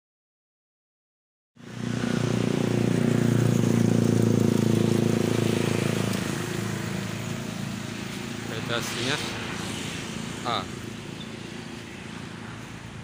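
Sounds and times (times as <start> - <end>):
vehicle engine running: 1.6 - 13.0.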